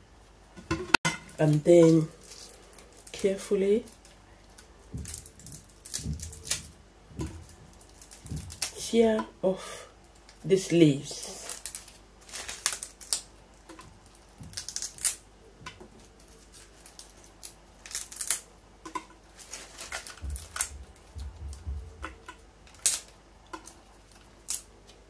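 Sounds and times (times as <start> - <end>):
leaves snapping and crackling: 1.3 - 9.2, 10.0 - 25.0
dull low thuds: 20.2 - 22.1.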